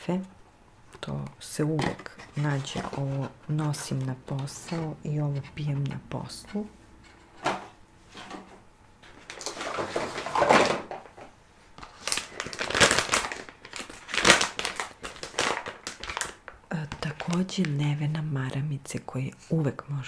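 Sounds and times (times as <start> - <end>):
plastic packaging crinkling: 1.8 - 4.9, 9.0 - 18.1.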